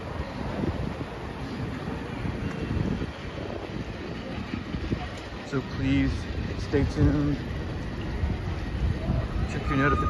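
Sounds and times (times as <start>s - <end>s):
traffic rumble: 0.0s - 10.0s
wind buffeting microphone: 0.0s - 10.0s.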